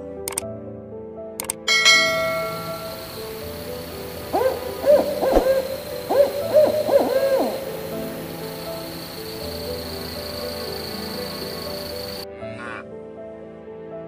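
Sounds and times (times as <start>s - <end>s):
quick clicks: 1.4s - 1.6s
ringing chime: 1.7s - 3.9s
owl hooting: 2.0s - 12.2s.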